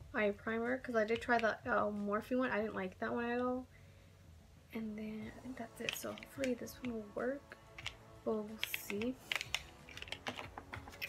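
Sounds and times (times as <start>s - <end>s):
small packaging clicking and tapping: 5.7s - 7.0s, 7.7s - 8.0s, 8.6s - 11.0s.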